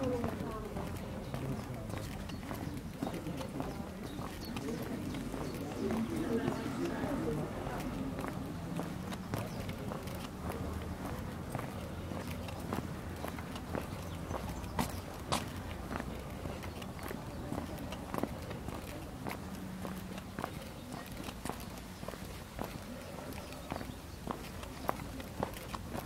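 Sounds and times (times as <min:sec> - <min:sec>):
footsteps on brick pavement: 0:00.0 - 0:26.0.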